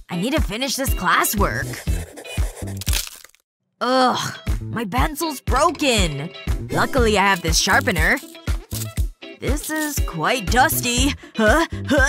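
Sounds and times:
pencil lead snapping: 9.6s - 10.0s.

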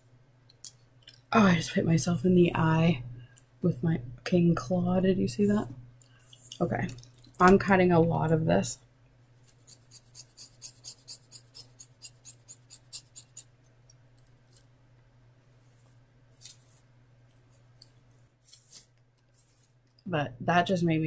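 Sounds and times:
hair rustling: 15.6s - 17.8s, 18.4s - 19.8s.

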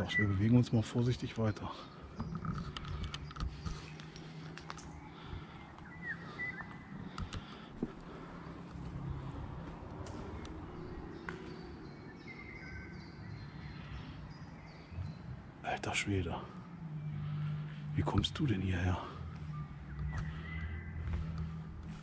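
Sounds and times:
short bird calls: 1.8s - 8.4s, 18.9s - 21.7s
steady low hum: 1.8s - 22.0s
footsteps crunching over rubble: 19.9s - 22.0s.

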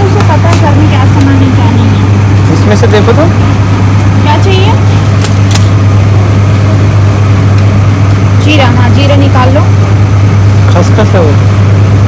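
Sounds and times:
loud steady low hum: 0.0s - 12.0s.

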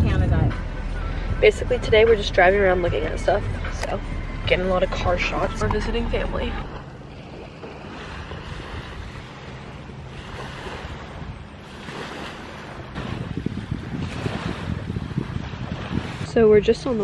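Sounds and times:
wind buffeting microphone: 0.0s - 17.0s
waves washing onto sandy shore: 6.6s - 17.0s.

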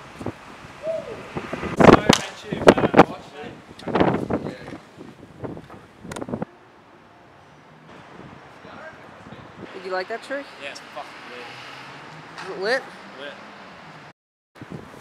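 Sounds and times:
hand slaps: 2.1s - 2.4s.

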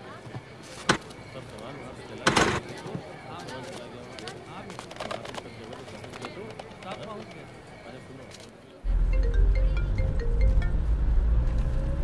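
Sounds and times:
background chatter of passers-by: 0.0s - 10.9s.

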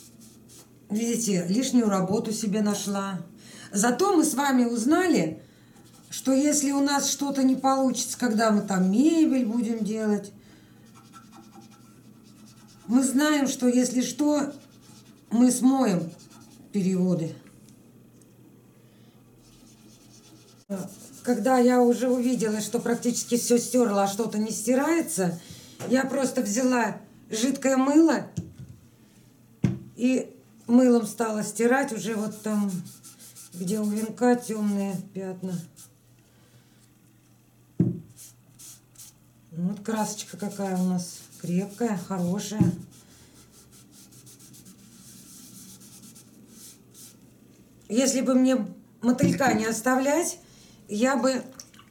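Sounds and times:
cloth rubbing on metal can: 10.9s - 13.2s, 14.0s - 16.7s, 19.4s - 24.1s, 32.0s - 35.9s, 40.2s - 47.2s.

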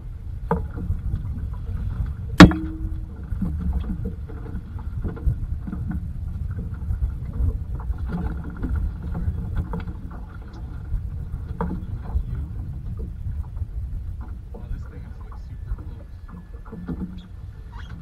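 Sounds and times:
wind and water rumble: 0.0s - 18.0s.

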